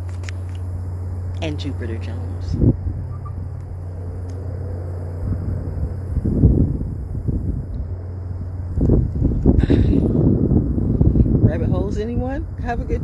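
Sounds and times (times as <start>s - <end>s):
steady low hum: 0.0s - 13.0s
wind buffeting microphone: 0.0s - 13.0s.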